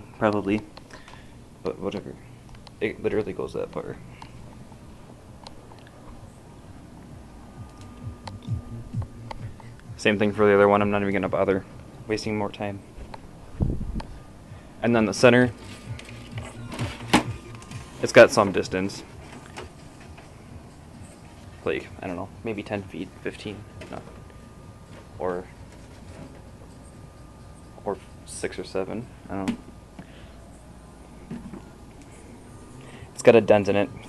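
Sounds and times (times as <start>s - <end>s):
low room hum: 0.0s - 34.0s.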